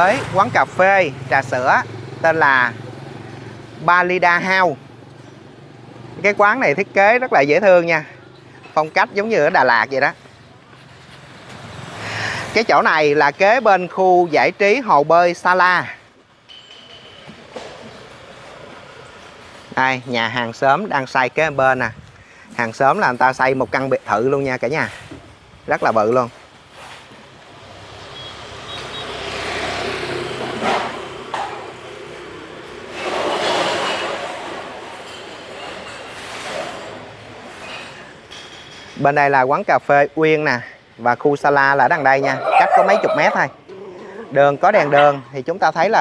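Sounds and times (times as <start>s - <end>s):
vehicle road noise approaching: 0.0s - 16.5s, 17.4s - 38.3s, 39.1s - 46.0s.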